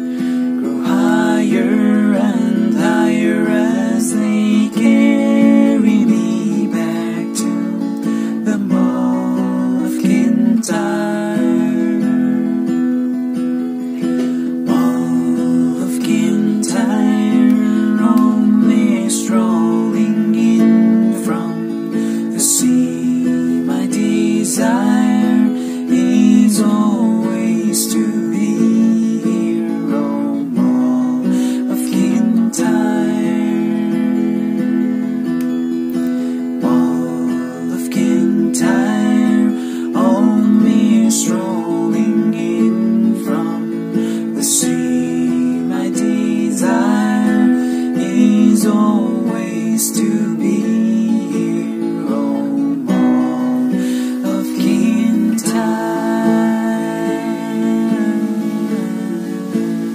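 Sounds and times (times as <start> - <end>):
strummed acoustic guitar: 0.0 - 59.9.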